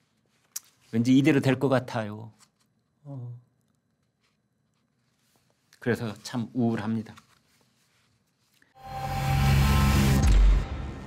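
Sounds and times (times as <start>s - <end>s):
sharp hit with bass boom: 9.3s - 11.0s.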